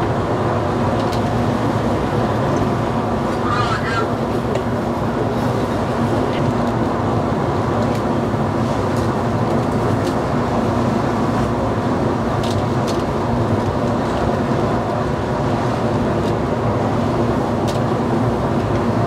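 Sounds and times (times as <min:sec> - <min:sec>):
ship engines droning rumble: 0:00.0 - 0:19.0
wind: 0:00.0 - 0:19.0.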